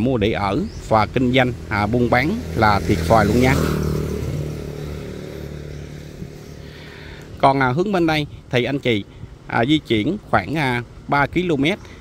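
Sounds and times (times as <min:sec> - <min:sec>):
passing vehicle engine hum: 0:00.0 - 0:07.5.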